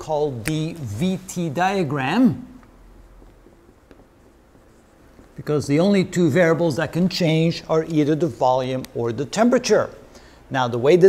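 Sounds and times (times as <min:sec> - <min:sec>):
marker pen writing on whiteboard: 0:00.0 - 0:08.4.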